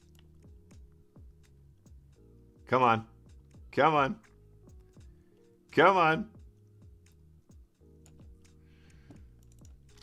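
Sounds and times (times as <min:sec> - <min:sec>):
quiet background music with beat: 0:00.0 - 0:10.0.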